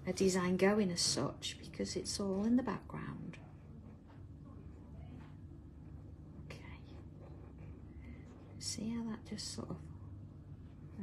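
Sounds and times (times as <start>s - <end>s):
low room hum: 0.0s - 11.0s
pen scratching on paper: 5.8s - 8.7s.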